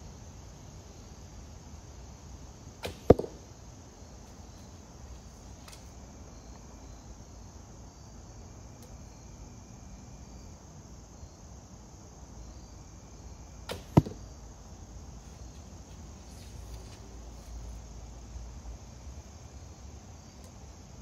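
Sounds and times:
crickets chirping: 0.0 - 21.0
bowstring release and arrow cracks: 2.8 - 3.4, 5.6 - 6.0, 13.7 - 14.2.

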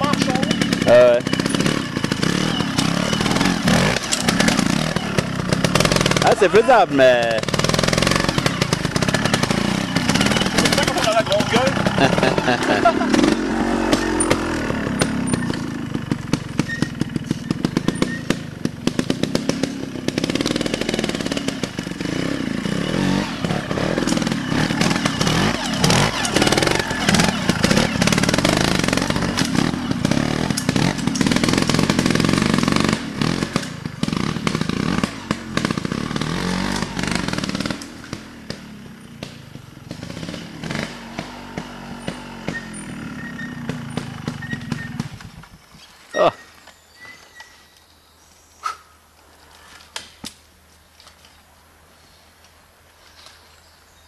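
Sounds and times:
motorcycle engine revving: 0.0 - 46.6.

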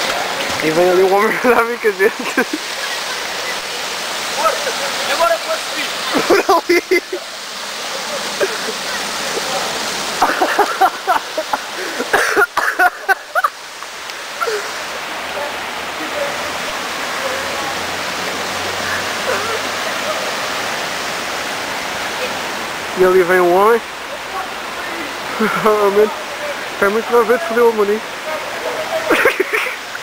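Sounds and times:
voices calling out: 0.0 - 30.0
water rushing over stone weir: 0.0 - 30.0.

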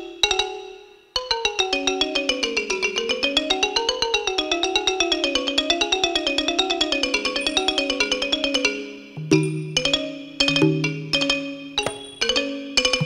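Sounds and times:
xylophone melody: 6.1 - 13.0.

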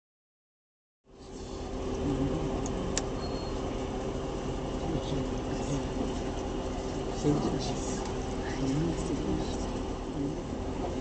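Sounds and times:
steady low rumble: 1.1 - 11.0.

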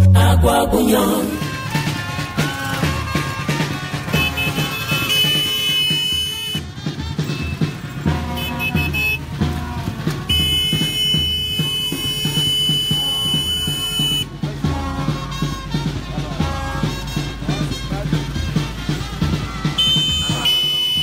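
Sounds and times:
music with steady beat: 0.0 - 21.0.

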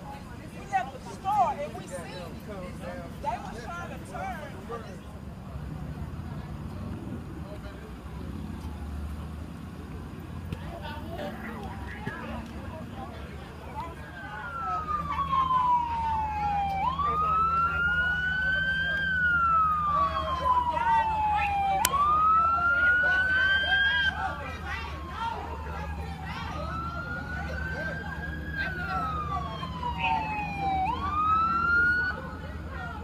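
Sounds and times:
emergency siren wailing: 13.6 - 33.0.

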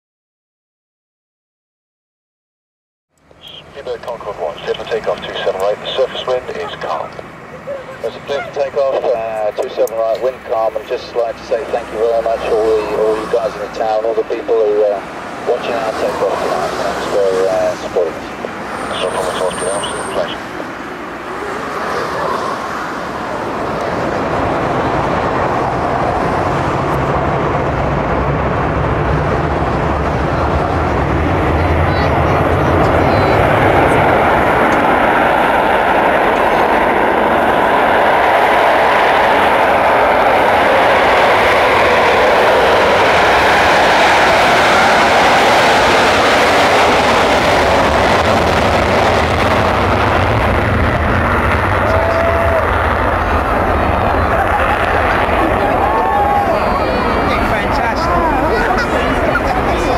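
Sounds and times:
jet engines at takeoff power: 3.2 - 59.9.

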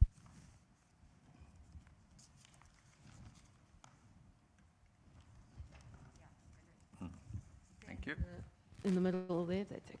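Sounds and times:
faint knocks and rustles: 0.0 - 10.0.

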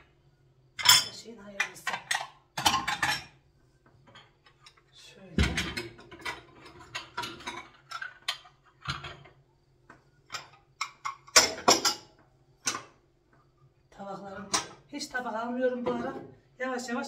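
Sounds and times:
plates clinking on shelf: 10.3 - 12.9.

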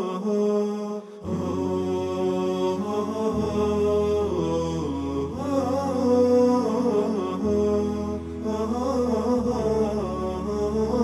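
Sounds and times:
chanting voices: 0.0 - 11.0.

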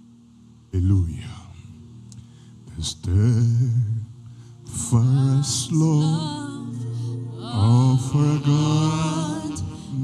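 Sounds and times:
man singing slowly: 2.6 - 10.0.

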